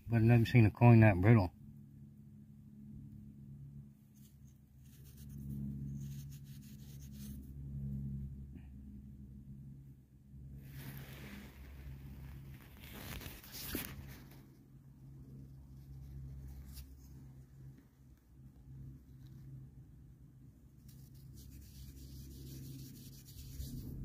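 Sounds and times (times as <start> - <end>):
low steady hum: 0.0 - 24.0
rustling handling noise: 10.6 - 14.5.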